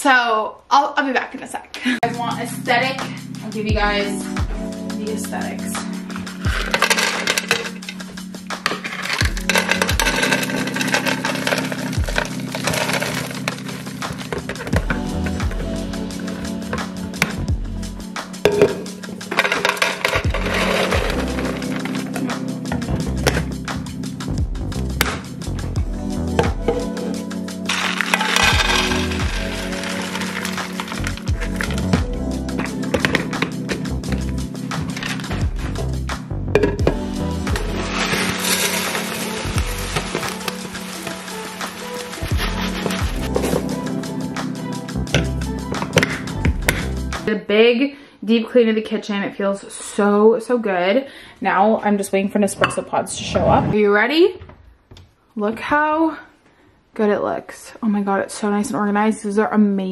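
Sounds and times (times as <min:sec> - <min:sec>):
background music with a beat: 0:03.0 - 0:47.3
snack mix rattling into plastic canister: 0:06.4 - 0:07.9, 0:08.6 - 0:14.8, 0:19.3 - 0:22.3, 0:27.7 - 0:32.0, 0:37.8 - 0:43.7.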